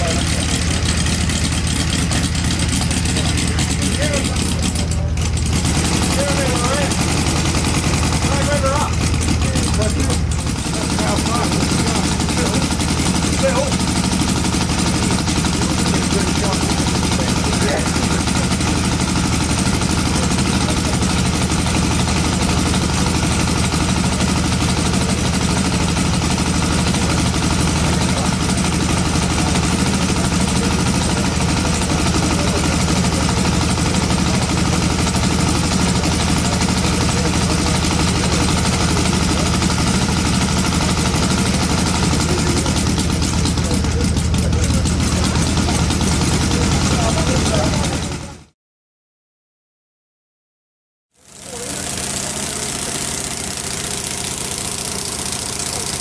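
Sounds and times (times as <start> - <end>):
model aircraft engine running: 0.0 - 48.5, 51.2 - 56.0.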